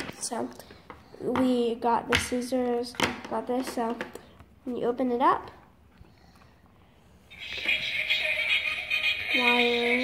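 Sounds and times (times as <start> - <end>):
greeting card chip song: 7.3 - 10.0.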